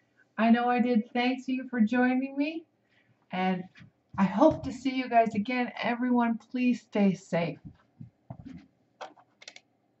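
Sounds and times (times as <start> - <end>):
computer keyboard clicking: 9.0 - 9.7.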